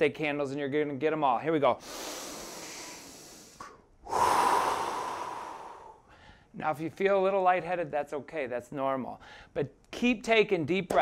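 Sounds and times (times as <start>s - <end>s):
forceful exhale: 1.8s - 6.5s
person inhaling: 1.8s - 6.6s, 9.2s - 9.6s.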